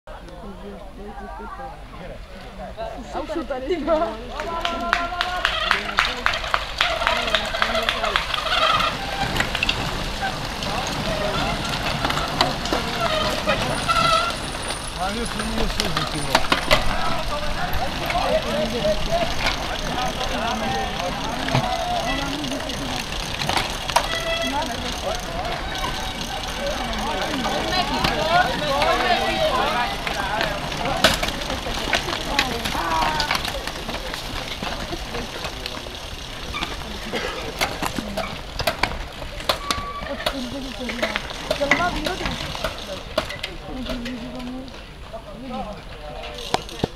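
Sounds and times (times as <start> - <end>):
bicycle tyres on dirt: 0.1 - 46.9
bicycle chain and gear clicks: 3.8 - 46.9
spectators shouting: 16.8 - 33.9.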